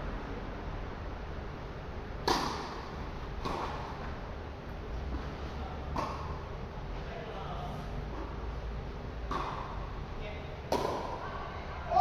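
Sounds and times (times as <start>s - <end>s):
tennis racket striking ball: 2.2s - 4.0s, 9.2s - 9.9s, 10.7s - 11.2s.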